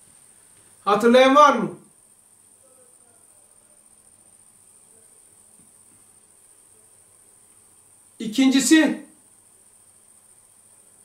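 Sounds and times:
faint high-pitched whine: 0:00.0 - 0:11.0.

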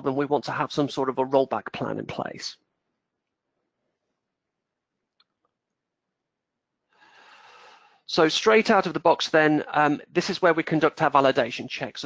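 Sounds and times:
soft in-breath: 0:06.9 - 0:08.1.

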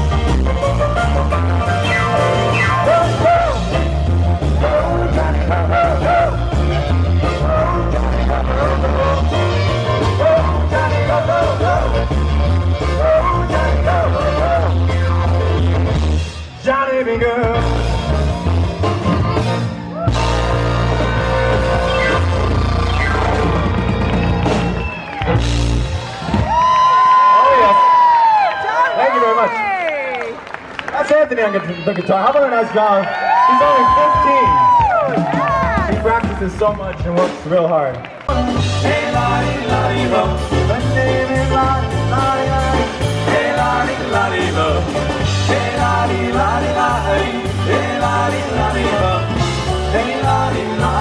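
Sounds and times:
polka band playing loud: 0:00.0 - 0:16.6, 0:17.3 - 0:27.1, 0:33.8 - 0:51.0
melody swooping in pitch: 0:00.9 - 0:03.8, 0:20.1 - 0:24.7
crowd cheering: 0:19.8 - 0:38.5
long high whoop: 0:26.1 - 0:28.9.

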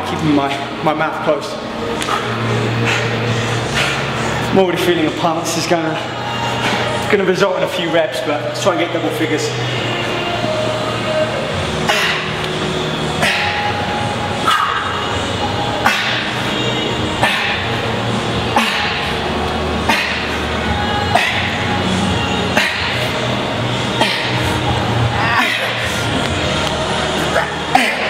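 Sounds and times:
background music with bass: 0:00.0 - 0:28.0
man breathing out forcefully: 0:22.4 - 0:23.2.

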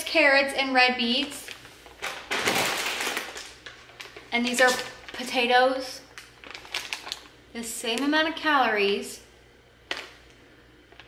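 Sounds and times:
plastic bags crinkling: 0:01.2 - 0:08.2, 0:09.9 - 0:10.3.

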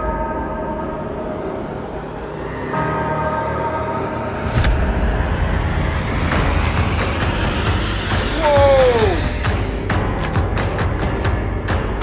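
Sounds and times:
propeller plane engine droning: 0:00.0 - 0:10.6
rushing whoosh: 0:01.4 - 0:11.6.

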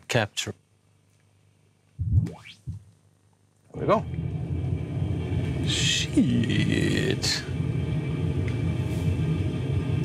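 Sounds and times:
low blip: 0:02.0 - 0:02.8
rising sine sweep: 0:02.0 - 0:02.9, 0:03.8 - 0:10.0.

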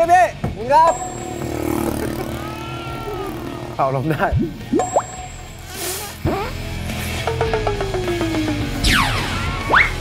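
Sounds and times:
truck engine humming: 0:00.8 - 0:08.8.

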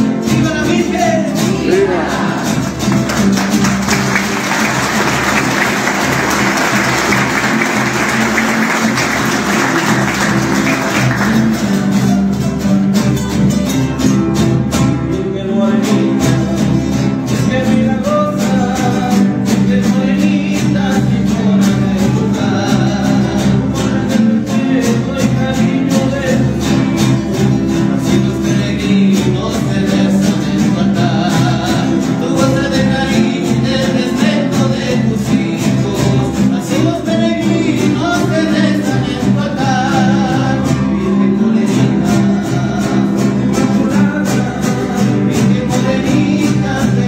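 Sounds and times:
voices singing: 0:00.0 - 0:12.1, 0:17.4 - 0:47.0
acoustic guitars strummed: 0:00.0 - 0:47.0
people clapping: 0:01.6 - 0:12.4.

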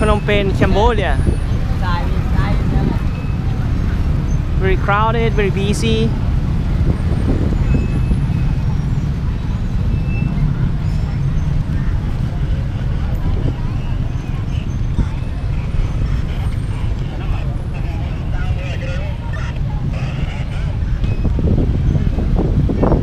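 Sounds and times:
murmur of passers-by: 0:00.0 - 0:23.0
street traffic rumble: 0:00.0 - 0:23.0.

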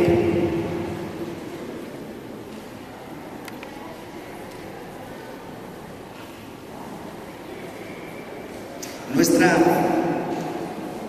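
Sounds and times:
man speaking over pa system: 0:00.0 - 0:01.0, 0:09.1 - 0:10.6
low room noise: 0:00.0 - 0:11.0.

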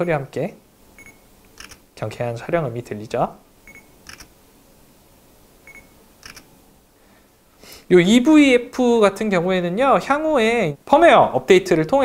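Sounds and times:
camera focus beep: 0:01.0 - 0:01.8, 0:03.6 - 0:04.3, 0:05.6 - 0:06.5.

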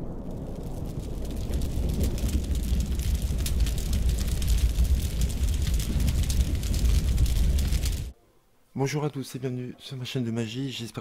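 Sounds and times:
flames rumbling: 0:00.0 - 0:08.1
fire crackling: 0:00.0 - 0:08.2.

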